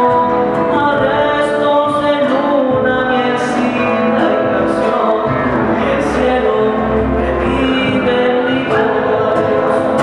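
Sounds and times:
acoustic guitar: 0.0s - 10.0s
man singing into microphone: 0.0s - 10.0s.

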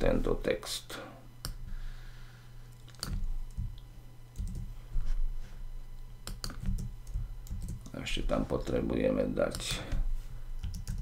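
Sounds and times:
faint low hum: 0.0s - 11.0s
keyboard keys clicking: 4.4s - 4.7s, 6.3s - 7.8s, 10.6s - 11.0s.

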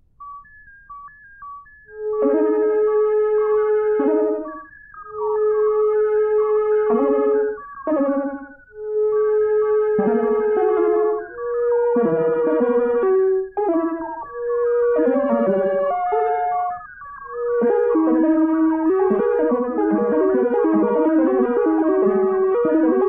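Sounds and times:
synthesizer music: 0.2s - 23.0s.

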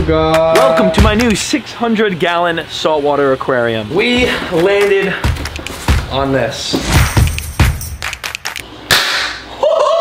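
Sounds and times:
sharp clicks: 5.3s - 5.8s, 7.0s - 8.7s
loud whip-like crack: 8.9s - 9.4s
person making long high call: 9.6s - 10.0s.

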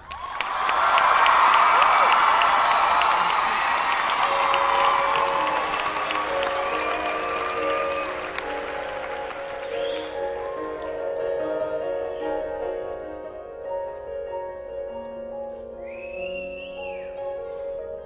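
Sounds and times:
audience applauding and cheering: 0.0s - 12.4s
keyboard sustained notes: 2.0s - 18.0s
whistles: 3.6s - 10.8s, 15.8s - 17.3s.

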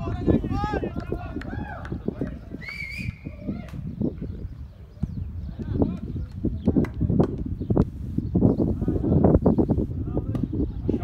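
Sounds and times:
people talking and calling out: 0.0s - 11.0s
high whistle-like call: 2.6s - 3.3s.

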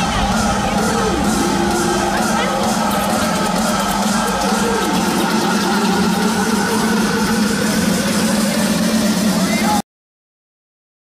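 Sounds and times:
crowd shouting and singing along: 0.0s - 9.8s
loud dance music: 0.0s - 9.8s.

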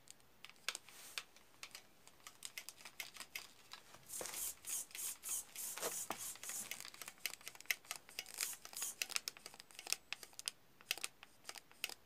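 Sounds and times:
plastic clicks and rustles: 0.0s - 4.0s, 6.5s - 12.0s.

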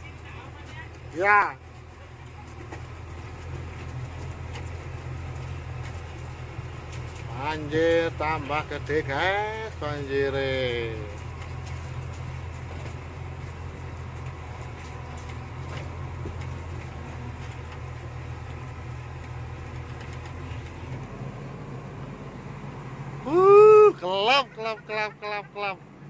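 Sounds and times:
vehicle engine droning: 0.0s - 26.0s
person shouting: 23.2s - 25.7s.

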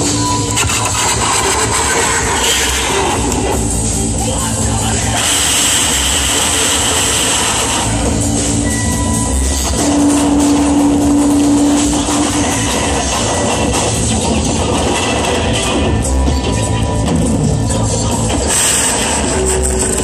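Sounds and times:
noisy experimental music: 0.0s - 20.0s.

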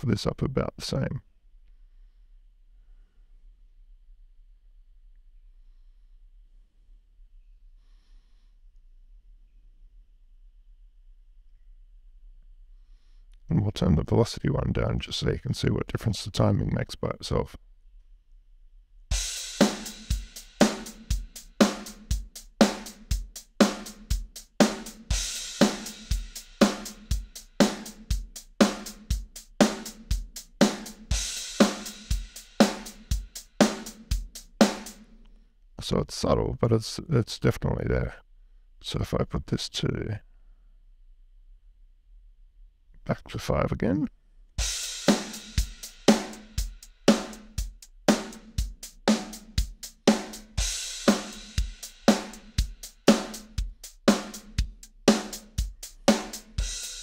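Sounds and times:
drum beat with kick snare and hi-hat: 19.1s - 35.2s, 44.6s - 57.0s
crash cymbal: 49.1s - 57.0s
kick drum: 52.6s - 54.8s.

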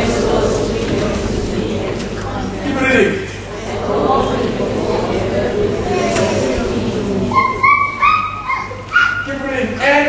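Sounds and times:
congregation reading aloud together: 0.0s - 10.0s.

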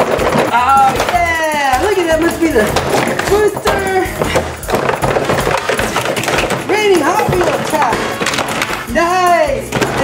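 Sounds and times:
cardboard packaging knocking: 0.0s - 9.0s, 9.7s - 10.0s
plastic toy pieces rattling: 0.0s - 10.0s.

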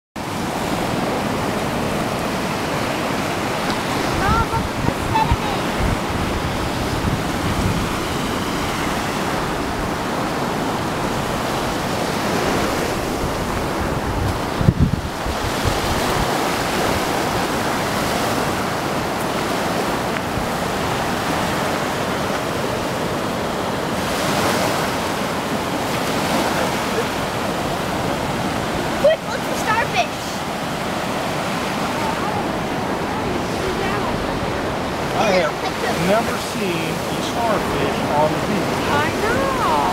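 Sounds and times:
wind on microphone: 0.2s - 29.4s
ocean surf on sandy beach: 0.2s - 39.9s.

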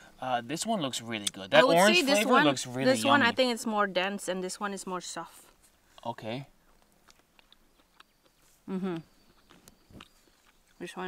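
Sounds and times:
woman speaking: 1.6s - 5.4s
faint chewing: 5.3s - 11.0s
soft mouth clicks: 7.0s - 10.8s.

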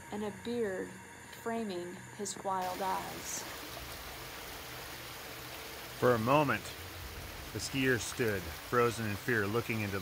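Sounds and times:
hiss-like background noise: 0.0s - 10.0s.

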